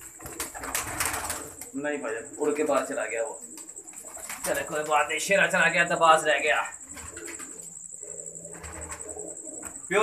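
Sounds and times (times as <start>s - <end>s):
pigeons cooing: 0.0s - 10.0s.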